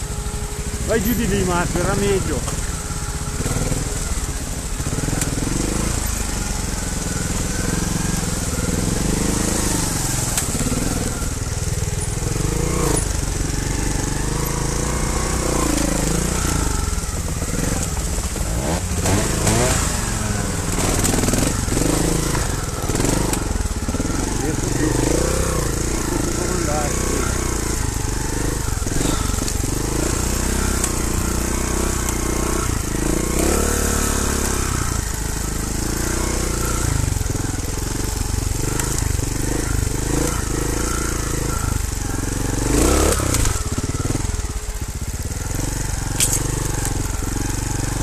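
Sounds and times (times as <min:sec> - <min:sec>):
motorcycle engine revving: 0:00.0 - 0:48.0.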